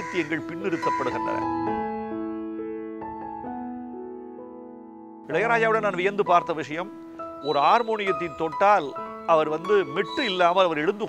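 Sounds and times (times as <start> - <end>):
held keyboard notes: 5.2 - 11.0
man speaking: 5.3 - 11.0.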